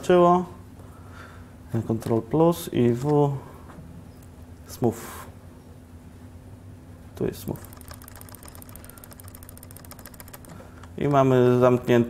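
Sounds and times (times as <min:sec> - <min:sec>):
steady low hum: 0:00.0 - 0:12.0
keyboard key clicking: 0:07.6 - 0:11.2.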